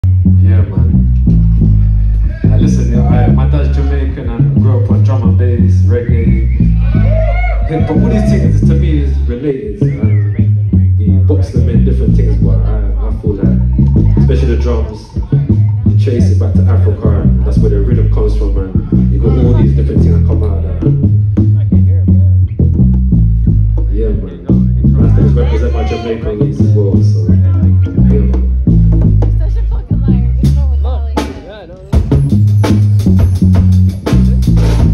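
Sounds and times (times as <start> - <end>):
electric bass line: 0.0 - 34.9
man's voice over pa: 2.2 - 6.6, 7.6 - 21.0, 23.9 - 28.6
live band playing: 6.0 - 34.9.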